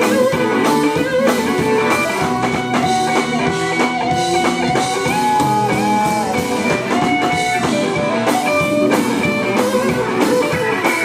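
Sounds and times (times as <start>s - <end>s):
blues band playing: 0.0s - 11.0s
electric guitar lead lines: 0.0s - 11.0s.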